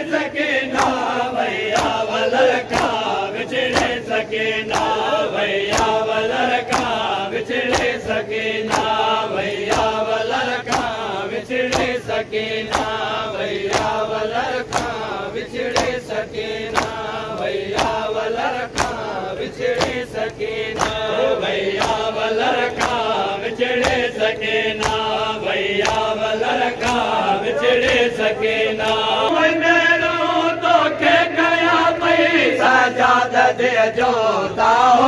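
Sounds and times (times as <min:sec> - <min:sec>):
men chanting together: 0:00.0 - 0:35.0
hands slapping chests: 0:01.7 - 0:02.0, 0:02.6 - 0:04.1, 0:04.7 - 0:08.1, 0:08.7 - 0:10.0, 0:10.6 - 0:11.0, 0:11.7 - 0:12.0, 0:12.7 - 0:13.0, 0:13.7 - 0:14.0, 0:14.6 - 0:15.0, 0:15.7 - 0:16.0, 0:16.7 - 0:17.0, 0:17.7 - 0:18.1, 0:18.7 - 0:19.1, 0:19.7 - 0:21.1, 0:21.7 - 0:26.2, 0:26.8 - 0:28.2.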